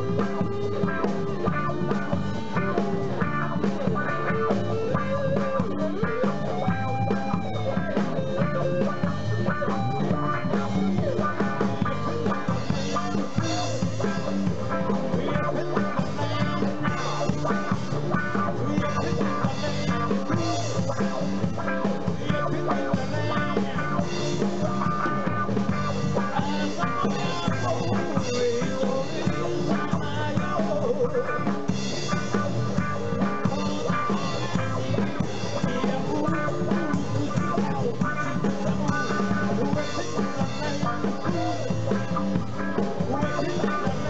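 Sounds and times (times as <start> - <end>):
drum kit: 0.0 - 44.0
electric guitar lead notes: 0.0 - 44.0.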